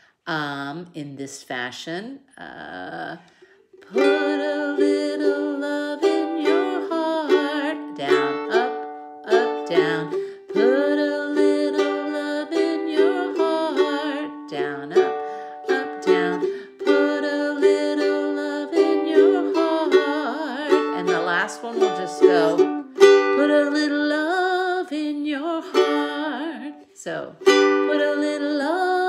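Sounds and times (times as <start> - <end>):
woman singing: 0.3 - 29.0
ukulele strumming chords: 3.6 - 29.0.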